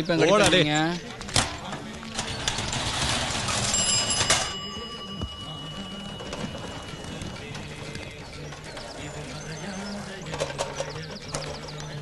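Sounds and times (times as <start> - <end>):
bicycle bell ringing: 3.4 - 8.3.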